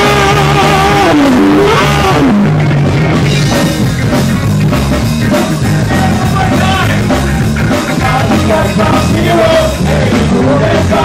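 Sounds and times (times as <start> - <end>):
ska-punk band bass and drums: 0.0 - 11.0.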